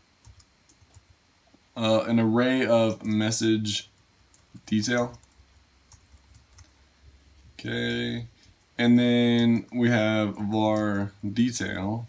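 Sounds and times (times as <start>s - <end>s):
computer keyboard keystrokes: 0.2s - 1.0s, 4.3s - 6.7s.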